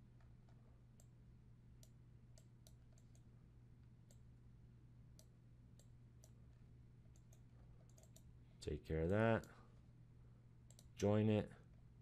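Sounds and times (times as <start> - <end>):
steady low hum: 0.0 - 12.0
computer mouse clicks: 1.8 - 3.3, 5.1 - 8.3, 10.7 - 10.9.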